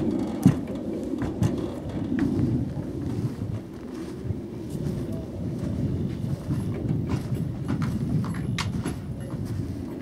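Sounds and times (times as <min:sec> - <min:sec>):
hooves knocking on trailer ramp: 0:00.0 - 0:03.6, 0:06.1 - 0:10.0
steady low rumble: 0:00.0 - 0:10.0.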